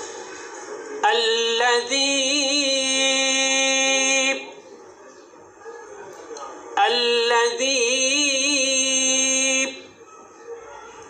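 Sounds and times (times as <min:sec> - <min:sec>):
faint room noise: 0:00.0 - 0:11.0
man reciting a long vowel: 0:01.0 - 0:04.6, 0:06.8 - 0:10.0.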